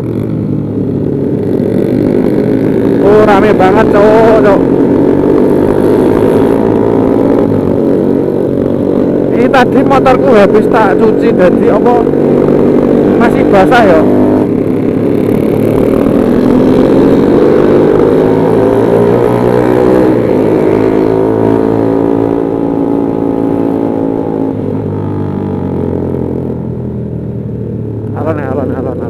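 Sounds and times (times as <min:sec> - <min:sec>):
motorcycle engine accelerating: 0:00.0 - 0:29.0.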